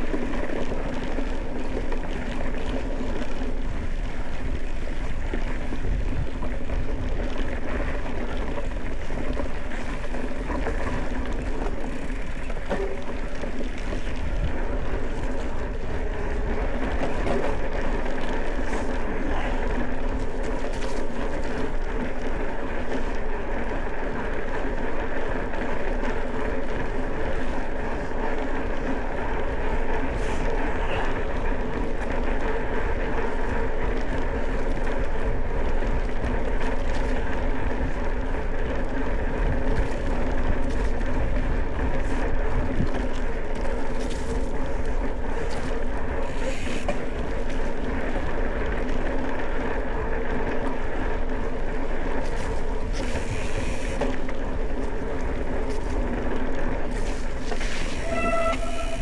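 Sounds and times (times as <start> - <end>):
bike tyres rolling over dirt: 0.0 - 59.0
wind on microphone: 1.3 - 21.8, 24.9 - 59.0
brief high tone: 58.0 - 59.0.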